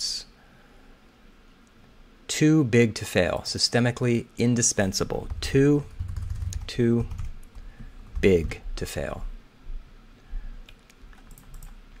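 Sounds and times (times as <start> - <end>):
keyboard typing: 5.1 - 8.6, 10.7 - 12.0.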